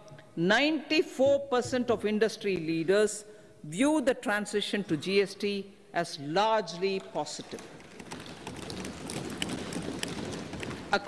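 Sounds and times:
people thumping desks: 7.0s - 11.0s.

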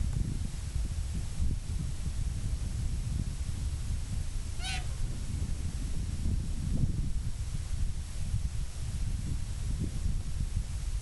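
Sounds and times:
wind rumble on microphone: 0.0s - 11.0s
short high animal call: 4.6s - 4.9s.

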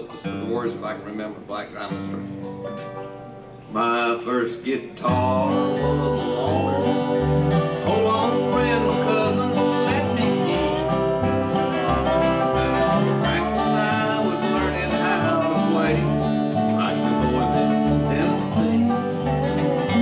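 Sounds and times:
acoustic guitars strumming: 0.0s - 20.0s
banjo: 0.0s - 20.0s
upright bass: 0.0s - 20.0s
man singing: 3.7s - 20.0s.

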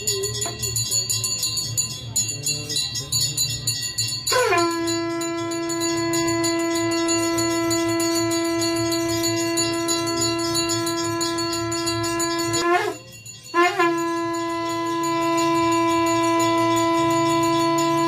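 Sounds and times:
conch shell blown: 4.0s - 18.0s.

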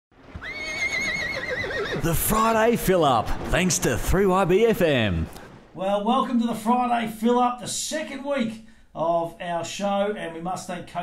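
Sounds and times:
horse whinnying: 0.3s - 2.1s.

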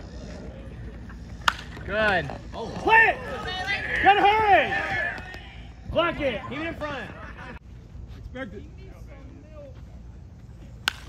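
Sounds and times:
bat cracking on ball: 1.4s - 2.2s, 10.8s - 11.0s.

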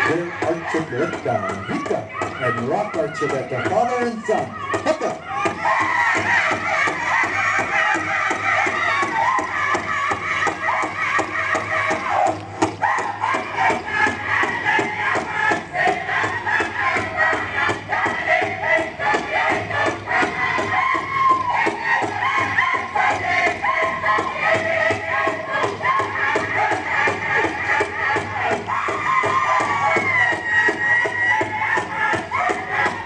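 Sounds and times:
drum beaten steadily: 0.0s - 33.0s
voices chanting: 0.0s - 33.0s.

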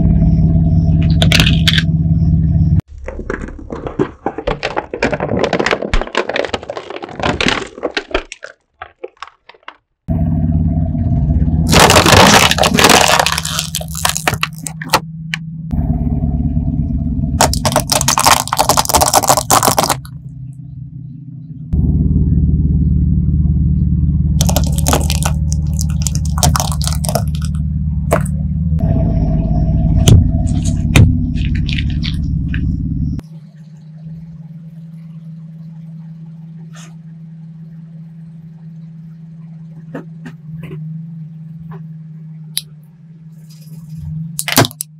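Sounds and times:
car engine at low revs: 0.0s - 2.9s, 10.1s - 44.9s
tyre crushing brittle objects: 1.1s - 1.8s, 2.9s - 9.8s, 11.7s - 15.0s, 17.4s - 20.1s, 24.4s - 28.4s, 30.1s - 32.7s, 43.5s - 44.9s.

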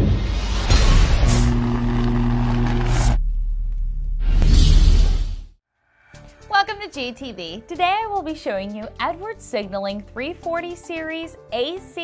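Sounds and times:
whoosh: 0.0s - 3.2s, 4.1s - 5.6s.

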